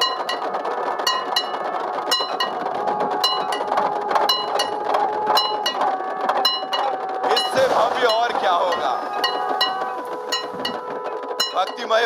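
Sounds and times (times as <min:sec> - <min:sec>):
long held tone: 0:00.0 - 0:07.6, 0:08.6 - 0:11.9
outdoor crowd hubbub: 0:00.0 - 0:12.0
metal bells ringing: 0:08.7 - 0:10.8.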